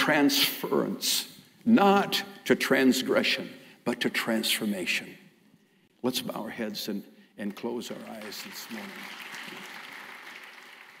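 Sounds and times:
congregation applauding: 7.5s - 11.0s.

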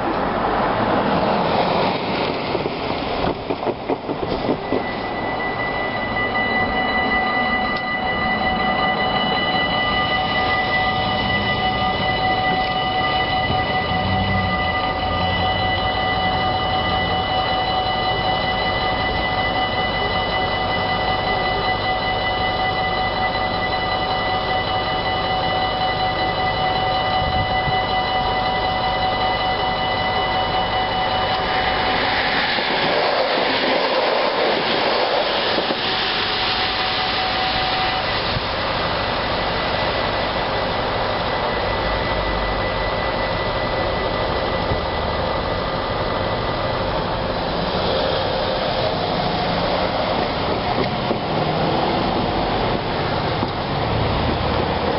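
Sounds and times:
train rushing past: 0.0s - 54.9s
level crossing bells ringing: 3.2s - 54.9s.

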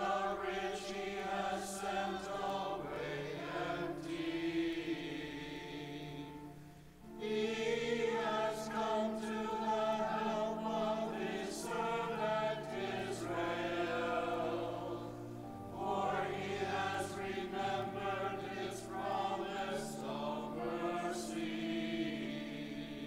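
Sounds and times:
congregation singing: 0.0s - 23.0s.

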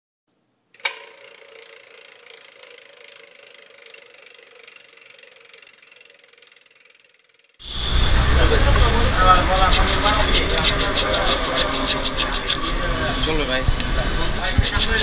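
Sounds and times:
outdoor background noise: 0.3s - 15.0s
fast even ticking: 0.8s - 15.0s.

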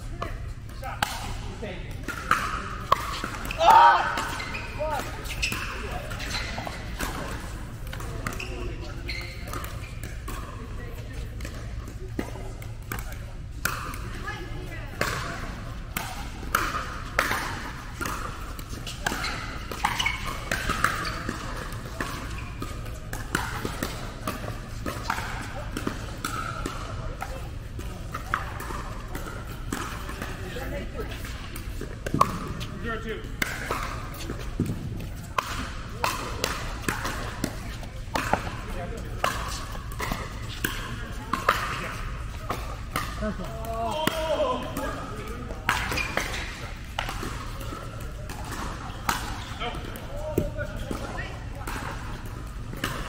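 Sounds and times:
pickleballs being hit: 0.1s - 53.0s.

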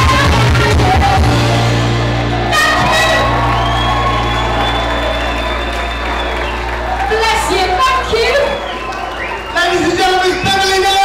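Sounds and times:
woman singing: 0.0s - 1.6s
pop band playing: 0.0s - 8.6s.

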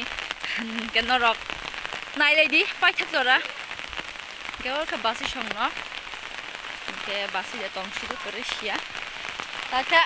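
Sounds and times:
rain on an umbrella: 0.0s - 10.0s.

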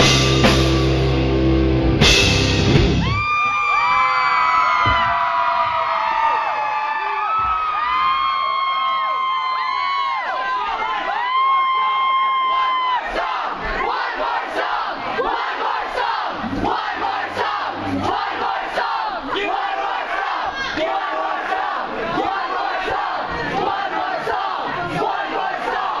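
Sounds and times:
concert crowd cheering and screaming: 2.6s - 26.0s.

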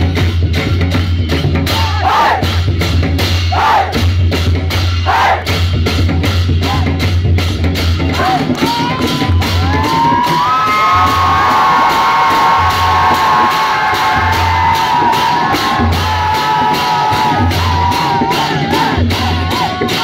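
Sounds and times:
drums beating in steady rhythm: 0.0s - 20.0s
crowd cheering and whooping: 8.4s - 20.0s.

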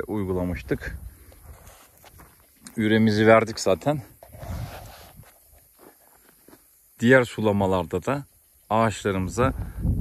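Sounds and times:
footsteps on soil: 1.2s - 6.8s.

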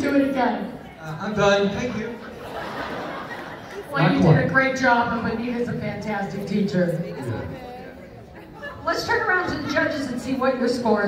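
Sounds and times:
faint audience chatter: 0.0s - 11.0s
man's amplified voice: 1.0s - 2.3s, 4.0s - 4.5s.

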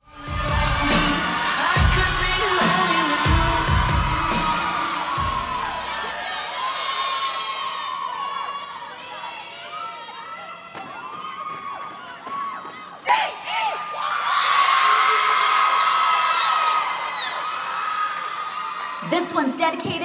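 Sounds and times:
audience cheering and screaming: 0.0s - 19.1s.

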